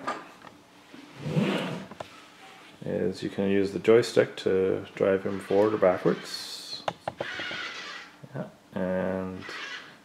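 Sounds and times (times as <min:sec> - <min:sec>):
cardboard box scraping on foam mats: 0:01.2 - 0:01.9.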